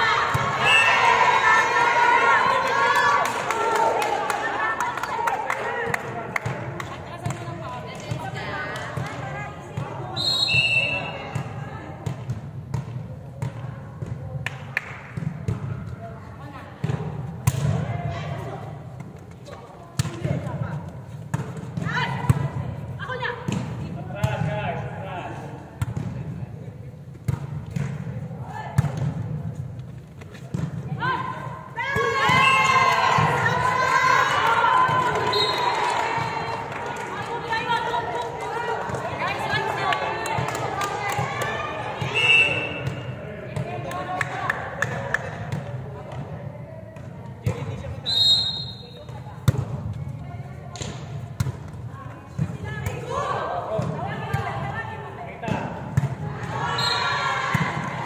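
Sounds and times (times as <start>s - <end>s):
players shouting and cheering: 0.0s - 12.0s, 30.9s - 46.0s, 52.2s - 58.0s.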